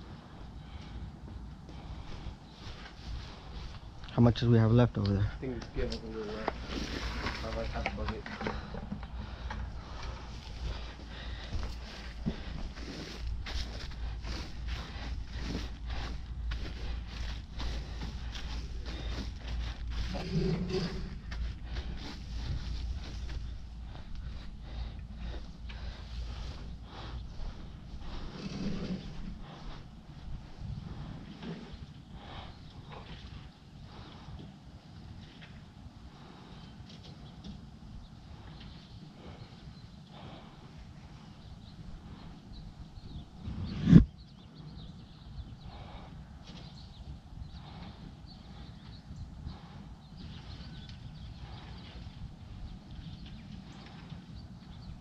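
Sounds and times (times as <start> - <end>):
footsteps on grass: 9.8 - 28.4
wood chips crunching and rustling: 11.1 - 20.3.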